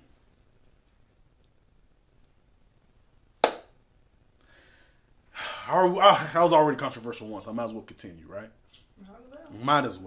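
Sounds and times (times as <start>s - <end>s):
hand strike smack: 3.4s - 3.7s.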